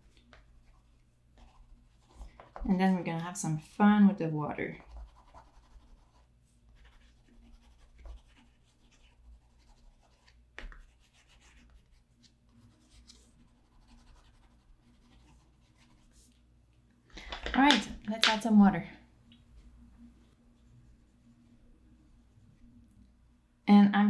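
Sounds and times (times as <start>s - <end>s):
pastel scratching on paper: 4.8s - 16.4s.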